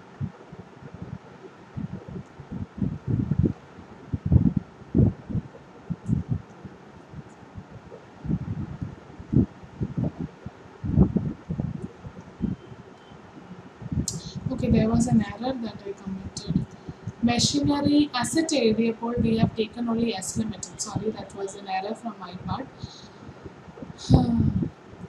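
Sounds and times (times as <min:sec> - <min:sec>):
faint steady hiss: 0:00.0 - 0:25.0
soft low thumps and knocks: 0:01.8 - 0:06.5, 0:07.2 - 0:12.6.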